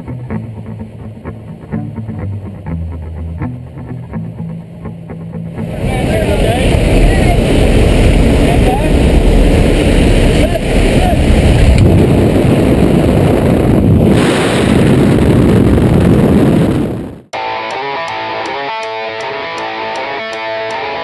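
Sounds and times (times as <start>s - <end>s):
background music: 0.0s - 5.8s
wind rushing on microphone: 5.6s - 17.3s.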